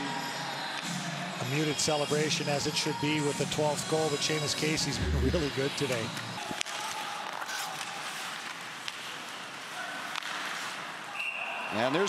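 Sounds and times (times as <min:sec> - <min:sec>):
hockey sticks and puck clicking: 0:06.5 - 0:10.8.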